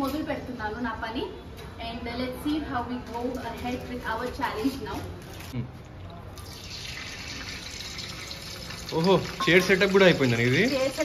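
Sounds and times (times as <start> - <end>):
liquid pouring into water: 6.0 - 11.0.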